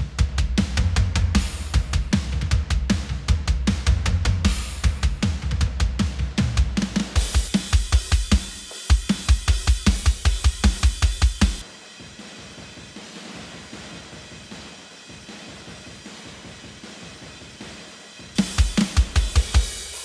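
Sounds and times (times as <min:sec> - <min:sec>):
cymbals: 0:00.0 - 0:20.0.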